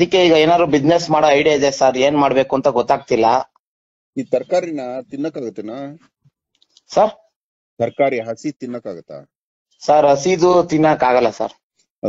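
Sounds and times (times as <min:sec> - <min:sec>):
man talking: 0:00.0 - 0:03.6, 0:04.2 - 0:06.2, 0:06.8 - 0:11.6.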